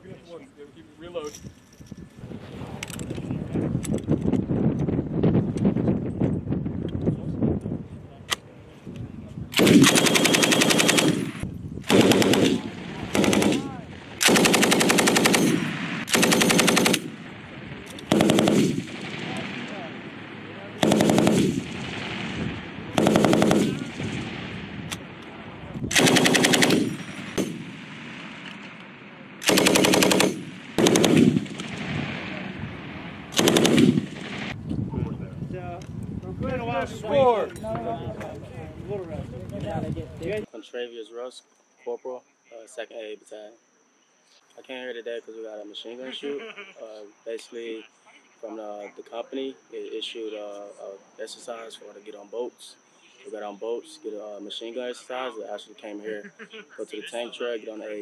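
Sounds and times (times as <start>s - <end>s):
machine gun firing bursts: 9.6s - 17.3s, 18.0s - 19.6s, 20.8s - 24.4s, 25.9s - 28.4s, 29.4s - 32.4s, 33.3s - 34.6s.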